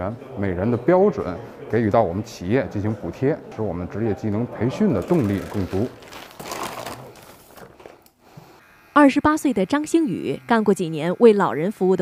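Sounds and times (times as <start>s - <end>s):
crinkly bag rustling: 5.0s - 8.0s.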